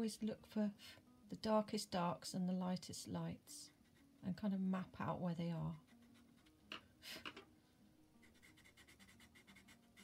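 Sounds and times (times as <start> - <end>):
pencil scratching on paper: 3.7 - 4.5, 5.7 - 6.6, 8.2 - 10.0.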